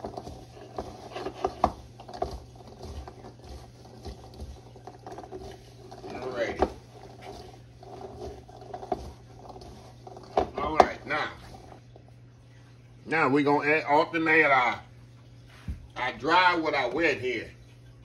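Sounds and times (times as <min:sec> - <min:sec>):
cranberries tossed in flour: 0:00.0 - 0:12.1
steady low hum: 0:00.0 - 0:18.0.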